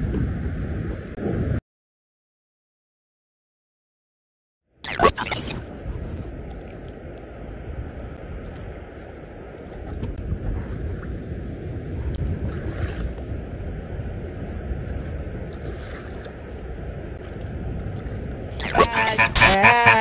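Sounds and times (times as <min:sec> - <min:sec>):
wind over microphone: 0:00.0 - 0:01.6, 0:05.6 - 0:18.8.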